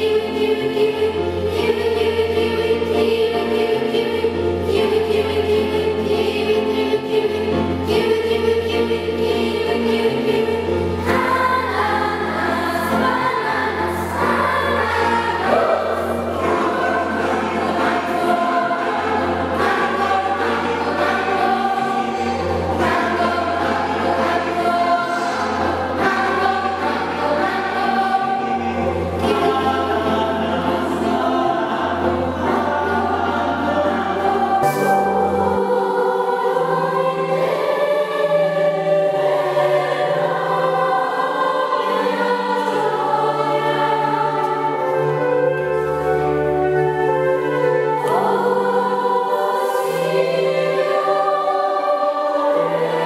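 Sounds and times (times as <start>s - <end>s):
children's choir singing: 0.0s - 53.0s
keyboard accompaniment: 0.0s - 53.0s.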